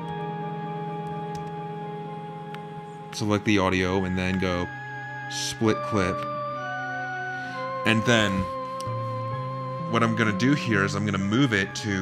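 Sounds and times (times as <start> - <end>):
soft sustained game music chord: 0.0 - 12.0.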